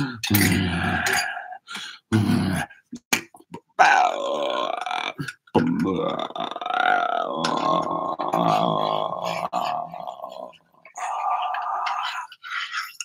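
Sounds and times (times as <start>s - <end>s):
man singing guttural tones: 3.8s - 12.2s.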